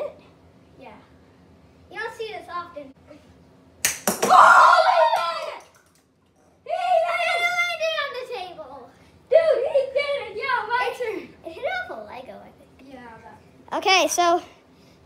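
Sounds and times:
children shouting: 0:04.2 - 0:05.8, 0:06.7 - 0:08.3, 0:09.3 - 0:11.0.

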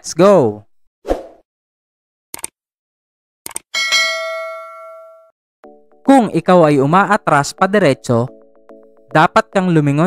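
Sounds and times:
bell chime ringing: 0:03.8 - 0:05.3.

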